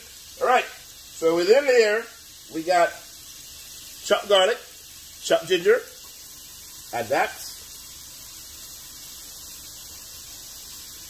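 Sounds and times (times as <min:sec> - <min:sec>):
garlic sizzling in hot pan: 0:00.0 - 0:11.0.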